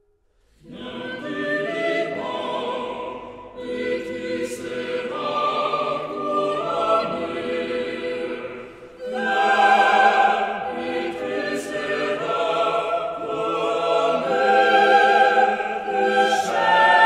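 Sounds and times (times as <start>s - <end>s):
choir singing a cappella: 0.6s - 17.0s.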